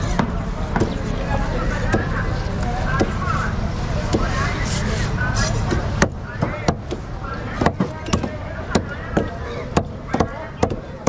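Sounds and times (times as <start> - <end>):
indistinct voices: 0.0 - 11.0
road traffic rumble: 0.0 - 11.0.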